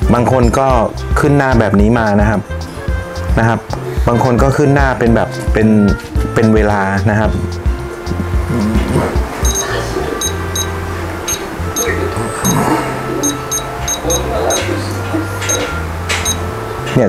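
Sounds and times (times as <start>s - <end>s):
background music with bass: 0.0s - 17.0s
electronic key beeps: 9.4s - 12.6s, 13.2s - 16.5s.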